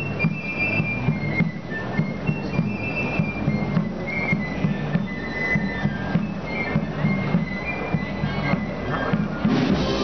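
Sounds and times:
brass band playing a march: 0:00.0 - 0:10.0
crowd chatter: 0:00.0 - 0:10.0.

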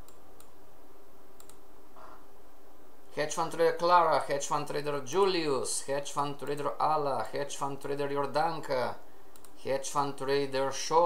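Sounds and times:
computer mouse clicks: 0:00.0 - 0:00.6, 0:01.4 - 0:02.2, 0:09.3 - 0:09.6
steady background hiss: 0:00.0 - 0:11.0.

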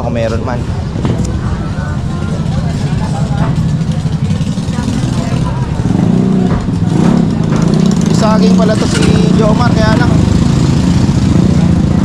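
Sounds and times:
faint voices: 0:00.0 - 0:10.4
small motorcycle engine running: 0:02.1 - 0:12.0.

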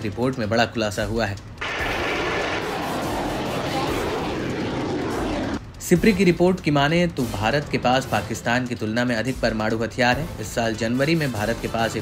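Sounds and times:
rocket motor rushing: 0:01.6 - 0:05.6.

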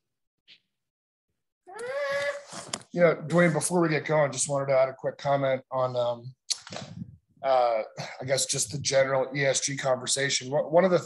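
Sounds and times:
high-pitched vocal call: 0:01.7 - 0:02.5.

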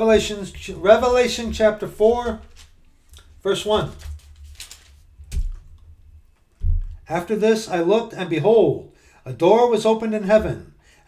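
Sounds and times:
loud knock and low thud: 0:06.6 - 0:07.0.

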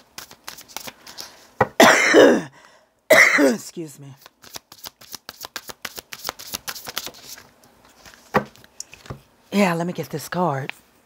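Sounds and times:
cards being shuffled: 0:00.0 - 0:01.3, 0:04.2 - 0:09.2.

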